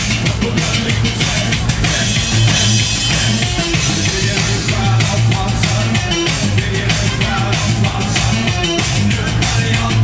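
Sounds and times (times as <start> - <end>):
driving drum beat: 0.0 - 10.0
loud live band music: 0.0 - 10.0.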